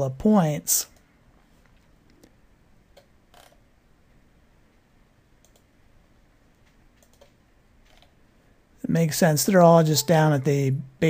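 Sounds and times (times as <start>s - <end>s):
computer mouse and keyboard clicks: 5.4s - 5.7s, 6.6s - 8.2s.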